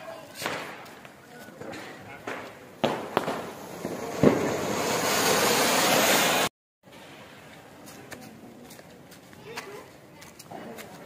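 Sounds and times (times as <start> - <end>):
sharp crack: 0.3 - 6.5
firework fountain hissing: 0.4 - 7.5.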